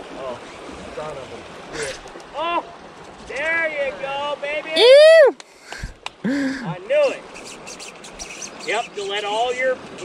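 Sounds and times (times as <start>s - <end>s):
man shouting excitedly: 4.7s - 5.4s
man whooping: 4.8s - 5.4s.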